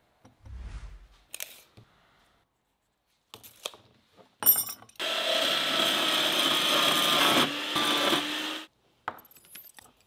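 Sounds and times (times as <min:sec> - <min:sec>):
bandsaw cutting metal rod: 0:05.0 - 0:08.7.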